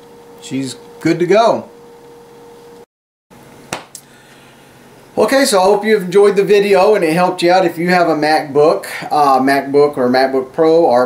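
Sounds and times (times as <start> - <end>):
faint steady hum: 3.4 - 11.0.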